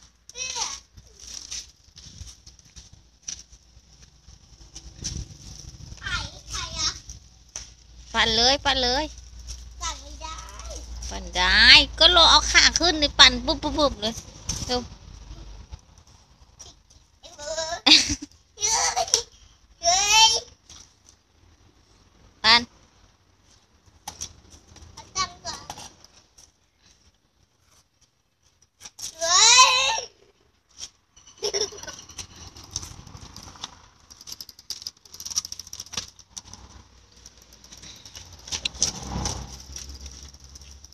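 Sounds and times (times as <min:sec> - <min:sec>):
bicycle clicks and rattles: 0:30.8 - 0:40.9
faint bicycle ticks: 0:32.2 - 0:40.9.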